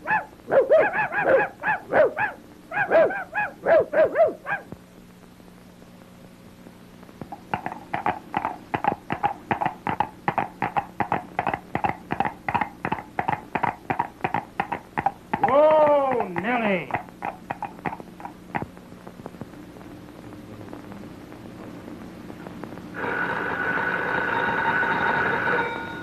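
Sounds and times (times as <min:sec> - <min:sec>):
dog whining: 0:00.0 - 0:04.7
dog yapping: 0:00.0 - 0:04.7.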